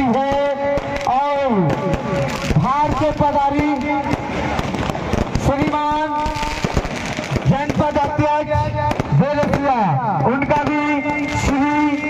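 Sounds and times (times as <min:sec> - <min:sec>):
fireworks cracking and banging: 0:00.0 - 0:12.0.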